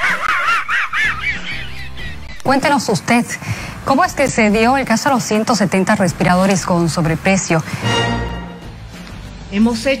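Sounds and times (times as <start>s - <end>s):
cartoon dog wheezy laugh: 0.0s - 1.9s.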